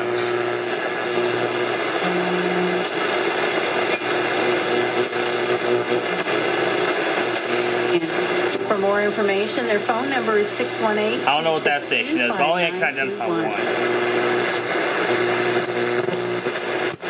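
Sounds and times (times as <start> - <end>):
radio static hiss: 0.0 - 17.0
radio voice: 3.8 - 16.7
humming whistle tones: 14.4 - 15.3.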